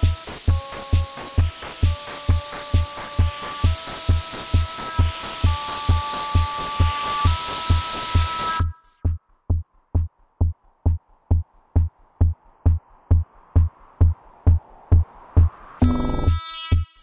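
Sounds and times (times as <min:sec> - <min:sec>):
electronic dance music: 0:00.0 - 0:09.2, 0:10.9 - 0:17.0
steady kick drum: 0:00.0 - 0:16.8.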